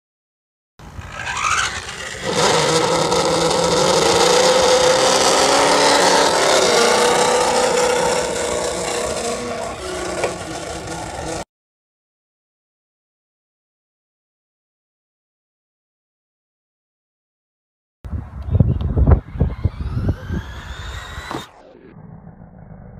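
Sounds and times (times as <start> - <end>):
remote control car motor whine: 0.8 - 11.4, 19.2 - 22.2
tyres scraping on gravel: 1.0 - 11.4.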